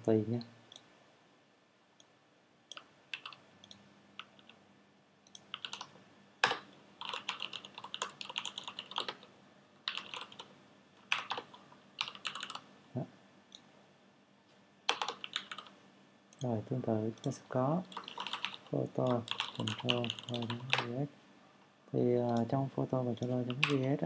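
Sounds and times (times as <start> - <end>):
typing on computer keyboard: 2.7 - 3.4, 5.3 - 9.3, 9.9 - 10.5, 11.1 - 12.6, 14.9 - 15.7, 17.9 - 20.9, 23.2 - 23.9.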